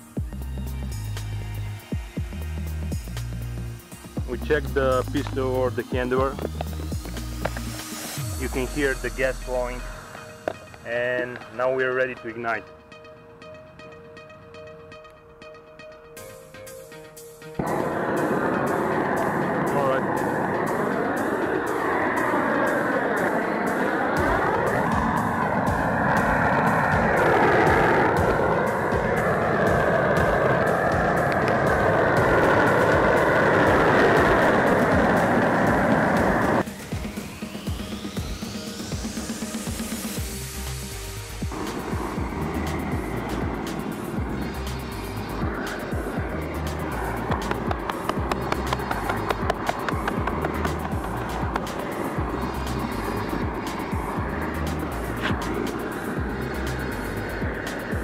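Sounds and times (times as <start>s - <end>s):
music: 0.0s - 58.0s
music with steady low beat: 0.0s - 58.0s
rising sweep: 0.0s - 58.0s
roofing torch roaring: 17.6s - 58.0s.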